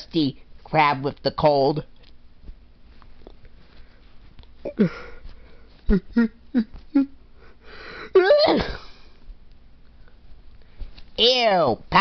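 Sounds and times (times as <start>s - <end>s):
faint sniffling: 3.6s - 9.3s
person sneezing: 8.0s - 9.1s.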